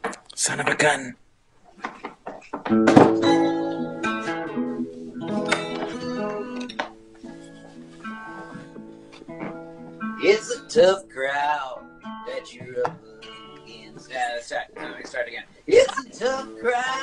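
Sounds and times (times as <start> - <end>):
guitar strumming chords: 2.7 - 17.0.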